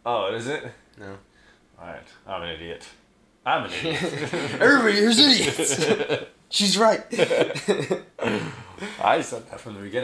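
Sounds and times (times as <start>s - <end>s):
men laughing: 3.7s - 6.4s, 7.0s - 9.2s
men coughing: 7.2s - 9.0s.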